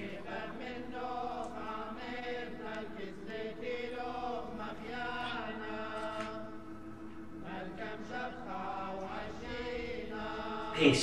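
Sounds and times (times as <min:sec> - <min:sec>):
choir chanting long notes: 0:00.0 - 0:11.0.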